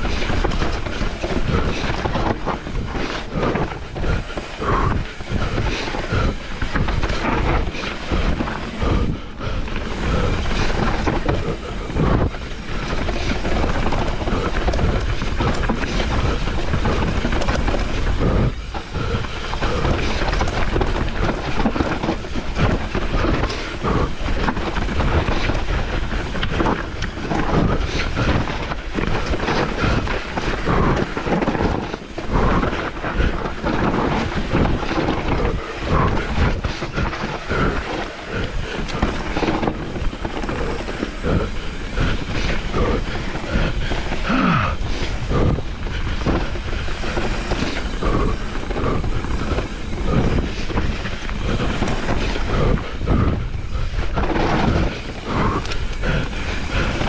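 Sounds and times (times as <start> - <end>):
bike chain and frame rattling: 0.0 - 57.0
bike tyres rolling over dirt: 0.0 - 57.0
wind on microphone: 0.0 - 57.0.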